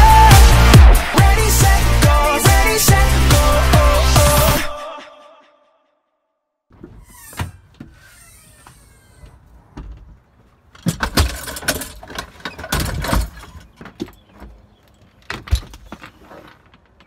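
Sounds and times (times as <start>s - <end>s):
gear clattering and knocking: 9.4s - 17.0s.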